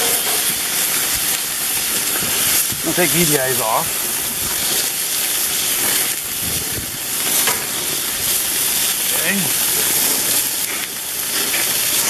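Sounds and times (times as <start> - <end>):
burger patties sizzling on grill: 0.0 - 12.0.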